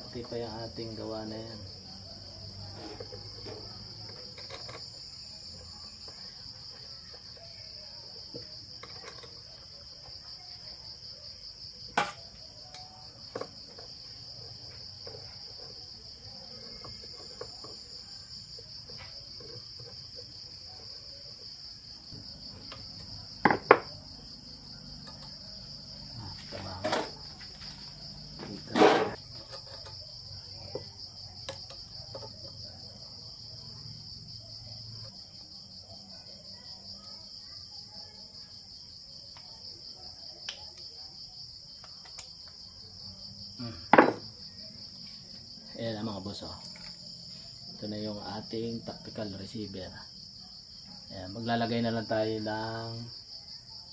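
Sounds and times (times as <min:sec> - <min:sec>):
crickets chirping: 0:00.0 - 0:53.9.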